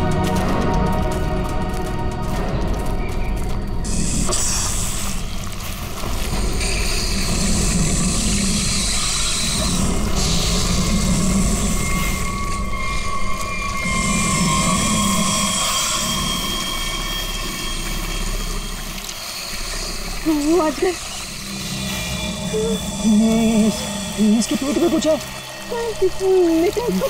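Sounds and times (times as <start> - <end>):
low rumbling drone: 0.0 - 27.0.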